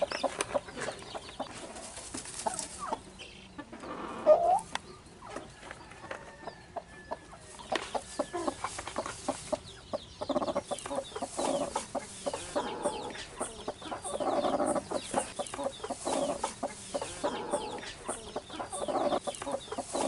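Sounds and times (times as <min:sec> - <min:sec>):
hen clucking: 0:00.0 - 0:20.0.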